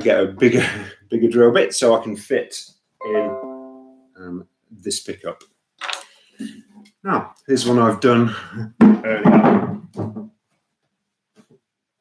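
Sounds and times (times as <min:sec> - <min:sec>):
person speaking: 0:03.0 - 0:06.0.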